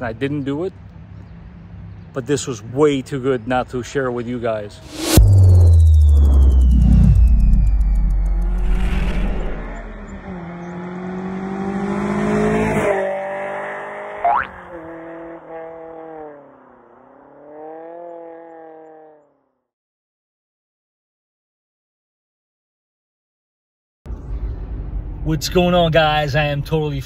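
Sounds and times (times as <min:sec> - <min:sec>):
car engine revving: 0:04.8 - 0:19.2.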